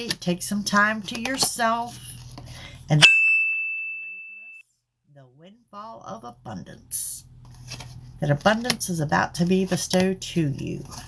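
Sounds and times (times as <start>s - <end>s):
high bell-like ding: 3.0s - 4.6s.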